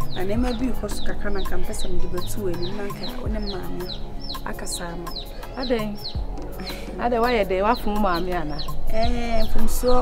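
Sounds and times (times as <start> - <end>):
chicks peeping: 0.0 - 6.9, 7.7 - 10.0.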